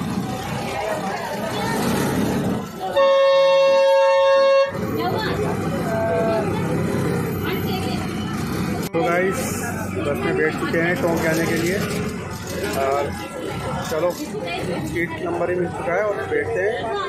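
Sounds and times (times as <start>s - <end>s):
bus horn blast: 2.9s - 4.9s.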